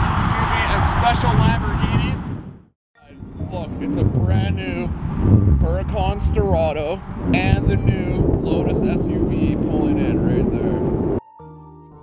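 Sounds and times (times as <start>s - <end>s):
steady low rumble: 3.0s - 11.2s.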